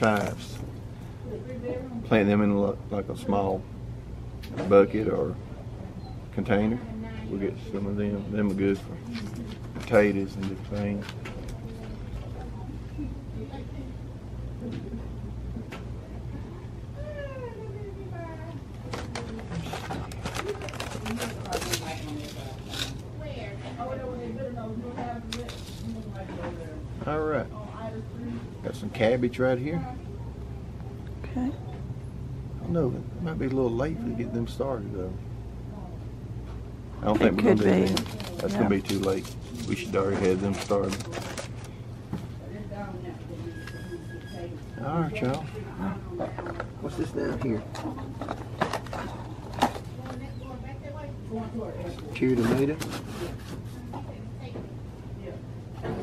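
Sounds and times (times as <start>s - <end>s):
paper seed packets rustling: 0.0s - 0.6s, 18.9s - 23.0s, 25.3s - 26.0s, 37.1s - 41.8s, 52.0s - 53.9s
steady low hum: 0.0s - 56.0s.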